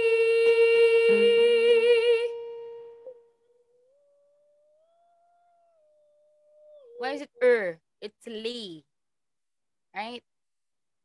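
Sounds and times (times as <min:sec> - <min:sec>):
person humming: 0:00.0 - 0:02.3.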